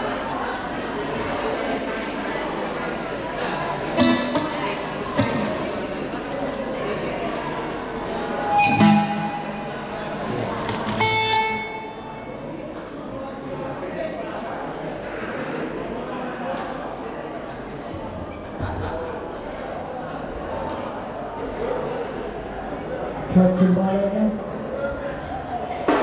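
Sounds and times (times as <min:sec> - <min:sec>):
people talking in a large hall: 0:00.0 - 0:26.0
guitar notes and chords ringing: 0:03.9 - 0:05.8, 0:08.4 - 0:12.5.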